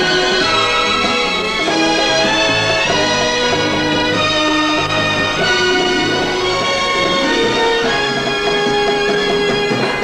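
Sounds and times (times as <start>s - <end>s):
instrumental theme music: 0.0s - 10.0s.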